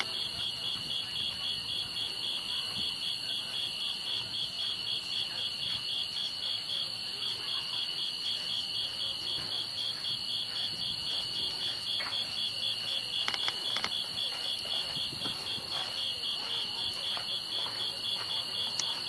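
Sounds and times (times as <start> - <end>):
continuous high whine: 0.0 - 19.0
insects chirring: 0.0 - 19.0.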